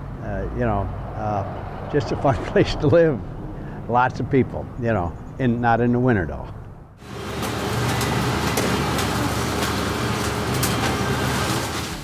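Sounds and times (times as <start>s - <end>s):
popcorn machine motor hum: 7.0s - 12.0s.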